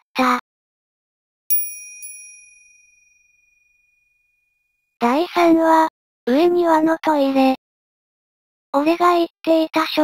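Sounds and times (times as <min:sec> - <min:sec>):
bell-like chime: 0:01.5 - 0:04.8.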